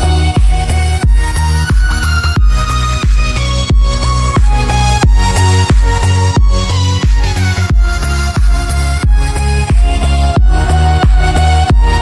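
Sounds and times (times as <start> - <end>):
deep kick drum: 0.0 - 12.0
synth melody with bending notes: 0.0 - 12.0.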